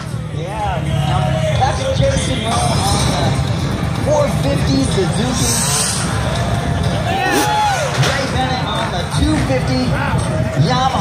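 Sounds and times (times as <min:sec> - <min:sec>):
crowd chatter: 0:00.0 - 0:11.0
loud music over loudspeakers: 0:00.0 - 0:11.0.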